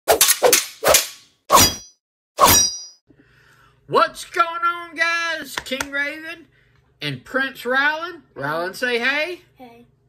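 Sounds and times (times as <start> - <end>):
sharp metallic clangs: 0.1 - 3.0.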